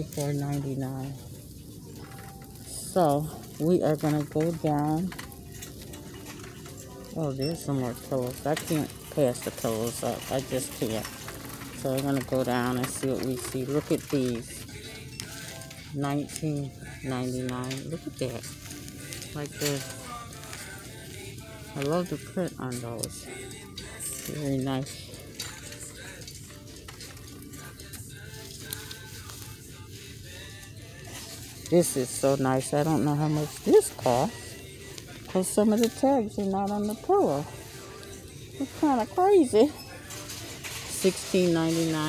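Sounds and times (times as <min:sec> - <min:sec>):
fabric rustling: 0:17.0 - 0:42.0.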